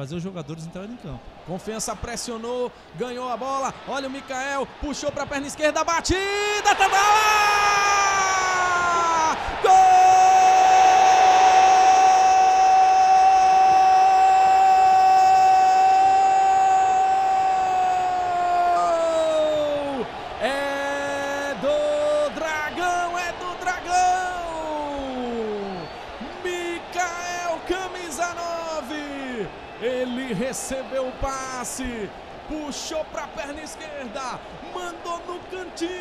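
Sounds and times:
stadium crowd noise: 0.0 - 36.0
man shouting excitedly: 3.0 - 36.0.

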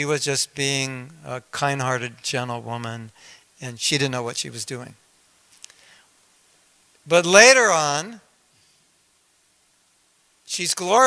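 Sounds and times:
soft breath: 3.1 - 3.6, 5.6 - 6.2.

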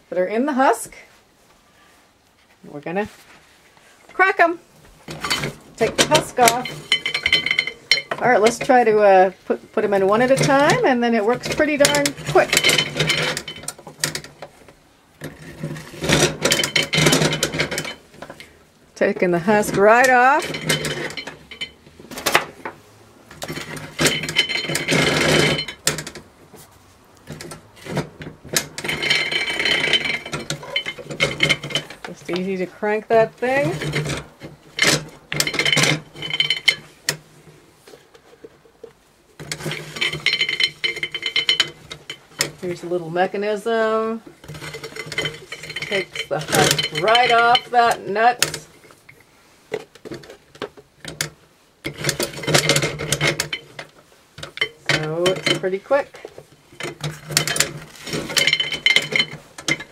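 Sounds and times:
hand-crank huller rattling and clicking: 5.0 - 26.4, 27.2 - 37.3, 37.9 - 59.9.

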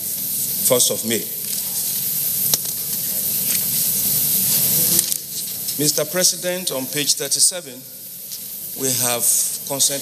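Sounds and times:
steady background hiss: 0.0 - 10.0
people speaking: 0.6 - 1.4, 4.6 - 7.9, 8.8 - 10.0.

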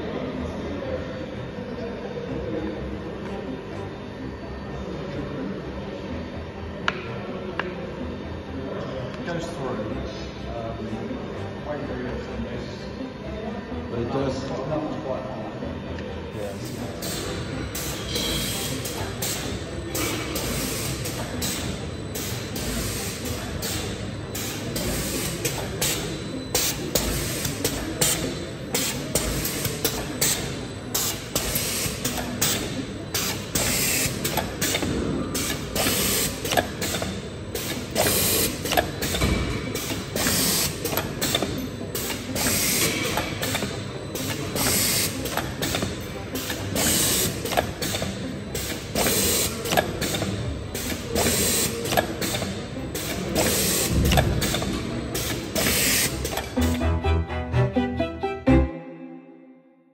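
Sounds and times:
steady machine noise: 15.5 - 57.7
machine clattering with quick clicks: 16.6 - 56.6.

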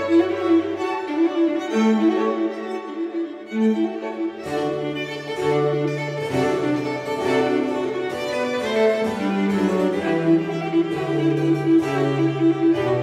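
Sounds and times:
baroque string ensemble: 0.0 - 13.0.

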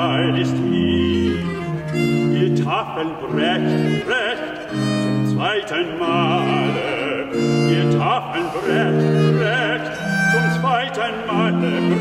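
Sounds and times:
baroque chamber ensemble playing: 0.0 - 12.0.

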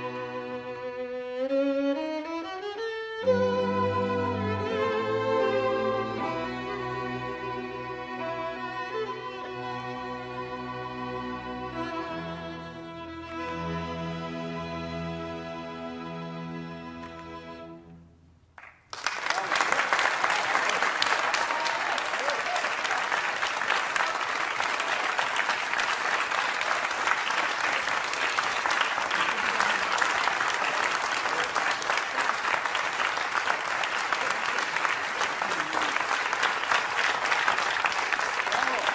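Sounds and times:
audience applauding: 18.6 - 38.9.

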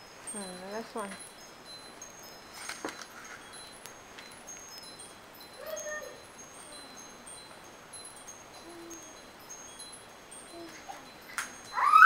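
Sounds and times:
high-pitched tinkling tones: 0.0 - 12.0.

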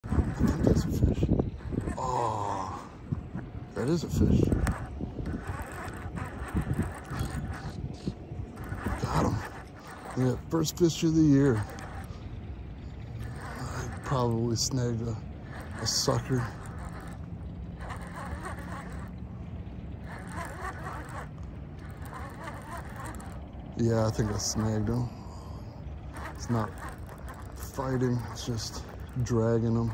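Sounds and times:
faint wavering chatter: 0.0 - 29.9
wind rumbling on microphone: 0.0 - 29.9
river flowing: 8.4 - 29.2.

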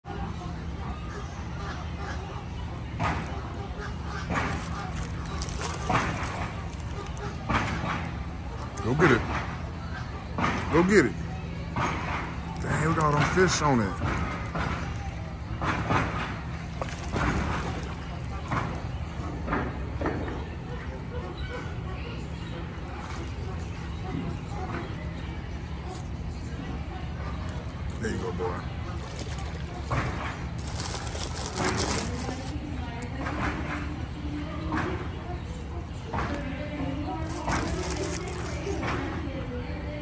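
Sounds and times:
indistinct voices: 0.0 - 40.0
water splashing and churning: 4.3 - 7.5, 15.8 - 19.2.

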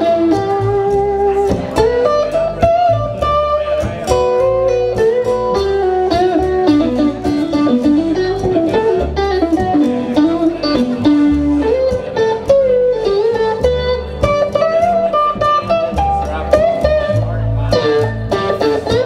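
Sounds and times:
electric guitar picking melody: 0.0 - 19.0
plucked upright bass: 0.0 - 19.0
strummed acoustic guitar: 0.0 - 19.0.

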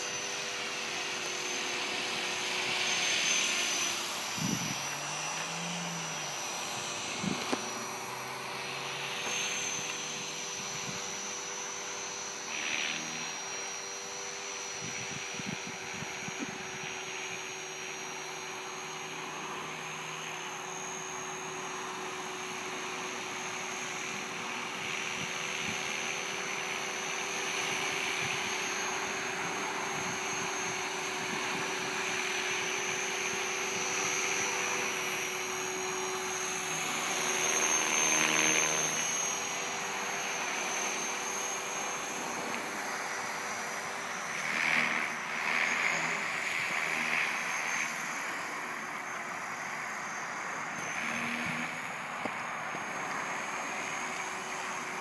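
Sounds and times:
model helicopter motor whine: 0.0 - 55.0.

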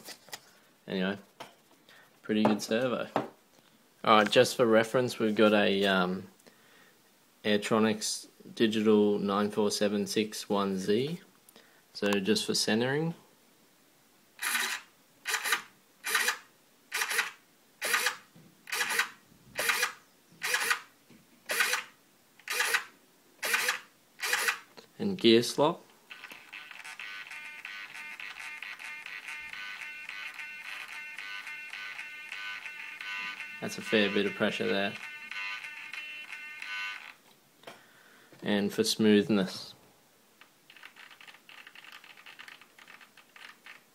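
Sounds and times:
servo motor buzzing high-pitched: 17.0 - 20.8, 21.5 - 21.9, 22.5 - 24.6, 26.4 - 37.0.

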